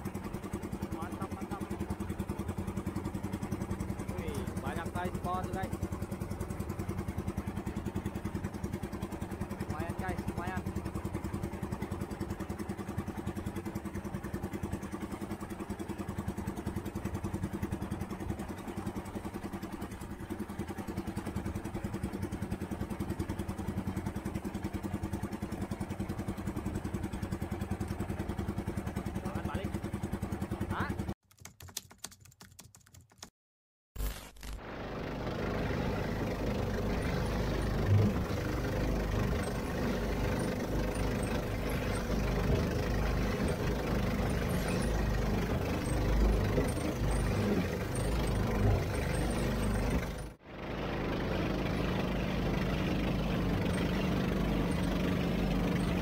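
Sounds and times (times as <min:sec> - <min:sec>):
boat engine running: 0:00.0 - 0:31.2, 0:34.4 - 0:56.0.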